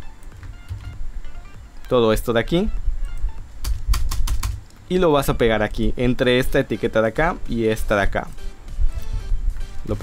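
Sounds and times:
computer keyboard clicking: 3.1s - 4.8s.

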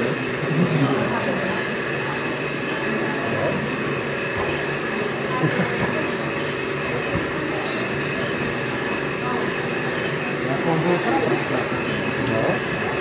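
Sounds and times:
high whining tones: 0.0s - 13.0s
mechanical hum: 0.0s - 13.0s
murmur of voices: 0.0s - 13.0s.

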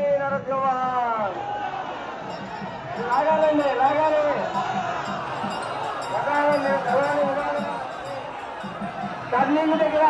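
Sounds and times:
murmur of a large crowd: 0.0s - 10.0s.

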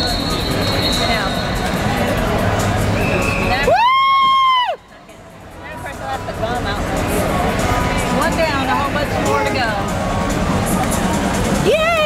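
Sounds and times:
crowd noise: 0.0s - 12.0s
spectator cheering woo: 3.5s - 4.9s.

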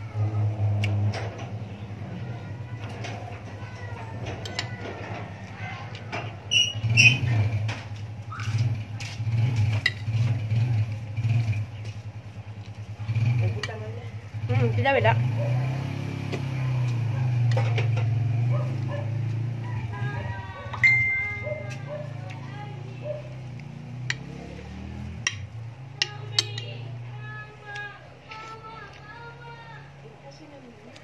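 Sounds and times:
voices talking: 0.0s - 31.0s.

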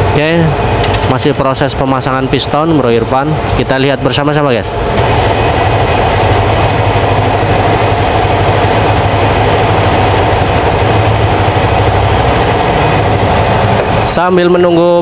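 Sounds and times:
motor droning steadily: 0.0s - 14.8s.

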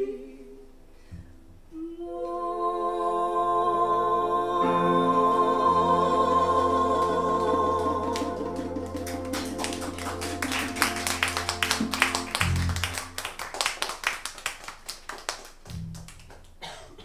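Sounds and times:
song held note: 4.7s - 13.4s
audience clapping: 7.0s - 16.6s.

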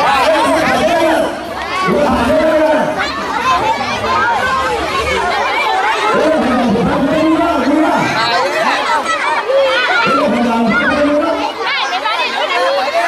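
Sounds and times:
crowd chattering: 0.0s - 13.0s.

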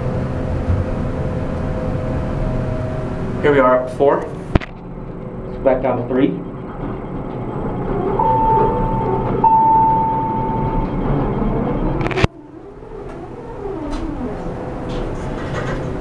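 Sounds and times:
elevator cab hum: 0.0s - 16.0s
elevator doors and machinery: 0.0s - 16.0s
elevator electronic tones: 5.0s - 16.0s
elevator doors knocking shut: 6.6s - 12.0s.

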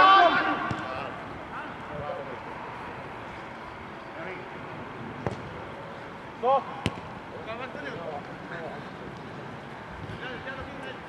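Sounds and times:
player shouting: 0.0s - 0.8s
players calling: 0.0s - 4.3s
football kick thuds: 5.2s - 5.5s, 6.8s - 7.1s.

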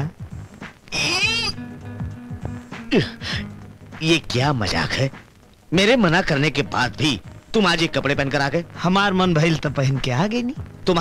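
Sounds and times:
film music low tones: 0.0s - 11.0s
high-pitched wavering cry: 0.9s - 1.7s.

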